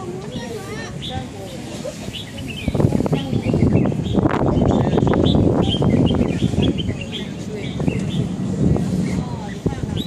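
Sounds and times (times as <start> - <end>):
dense low ambient noise: 0.0 - 10.0
small birds chirping: 0.0 - 10.0.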